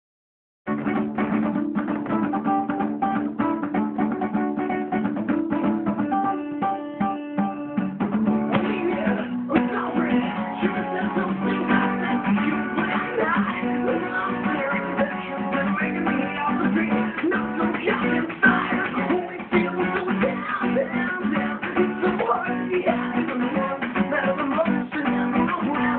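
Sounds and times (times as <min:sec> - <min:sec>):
acoustic guitar strumming: 0:00.7 - 0:25.9
man singing: 0:08.4 - 0:25.9.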